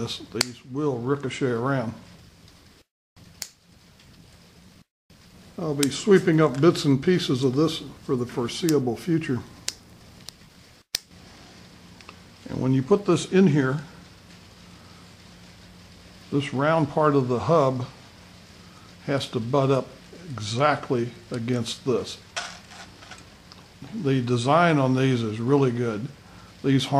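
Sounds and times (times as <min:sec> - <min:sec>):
steady hiss: 0:00.0 - 0:26.9.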